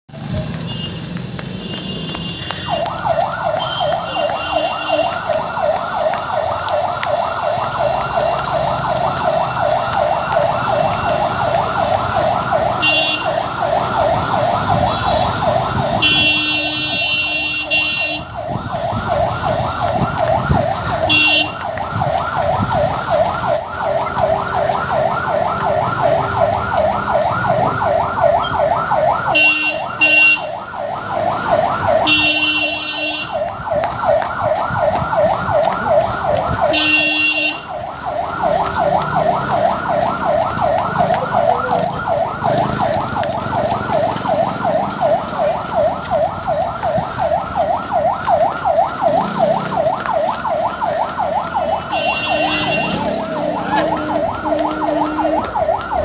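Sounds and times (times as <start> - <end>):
ambulance siren yelping: 2.0 - 56.0.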